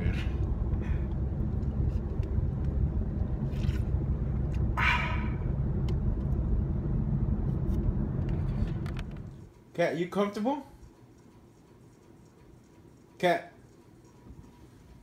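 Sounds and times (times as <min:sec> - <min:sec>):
car road rumble: 0:00.0 - 0:09.5.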